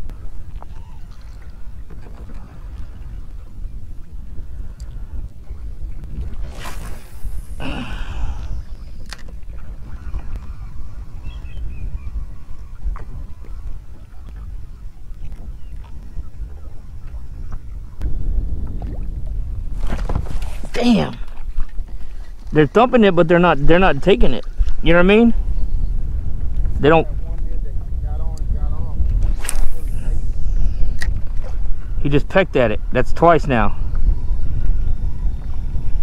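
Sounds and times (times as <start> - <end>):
low wind rumble: 0.0 - 36.0
fishing rod swish: 6.2 - 7.6, 29.2 - 31.6.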